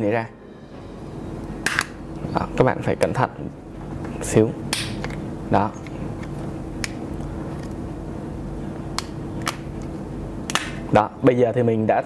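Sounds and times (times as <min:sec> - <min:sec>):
plastic clips snapping loose: 0:04.7 - 0:05.2, 0:09.0 - 0:09.7, 0:10.5 - 0:10.8.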